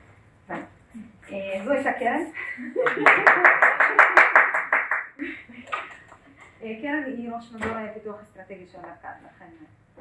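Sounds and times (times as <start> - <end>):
hand clapping: 2.8 - 6.2.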